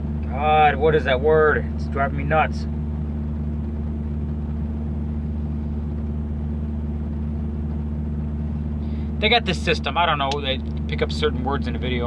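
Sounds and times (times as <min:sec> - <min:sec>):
idling engine hum: 0:00.0 - 0:12.0.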